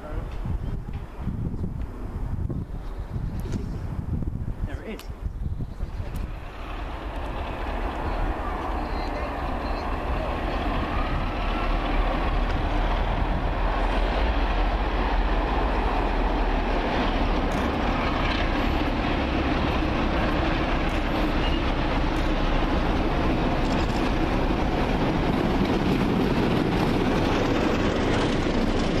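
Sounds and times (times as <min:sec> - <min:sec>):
diesel locomotive engine rumble: 0:00.0 - 0:29.0.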